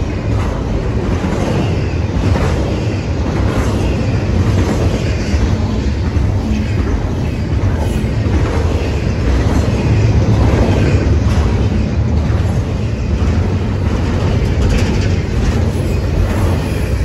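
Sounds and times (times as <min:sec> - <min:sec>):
train wheels rumbling on rails: 0:00.0 - 0:17.0.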